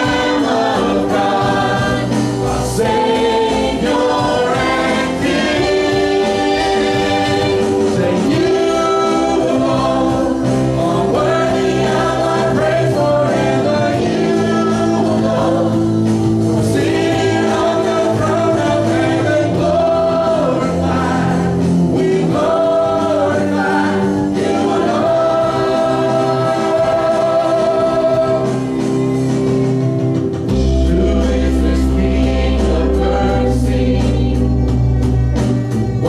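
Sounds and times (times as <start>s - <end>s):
drums: 0.0s - 36.0s
guitar: 0.0s - 36.0s
keyboard: 0.0s - 36.0s.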